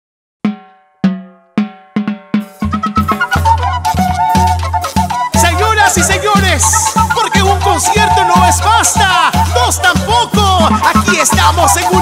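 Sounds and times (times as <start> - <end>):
ringing drum hits: 0.5 - 2.8.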